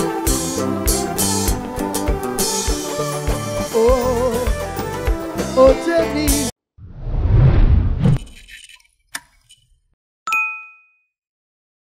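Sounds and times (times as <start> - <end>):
notification bell ding: 10.3 - 11.2.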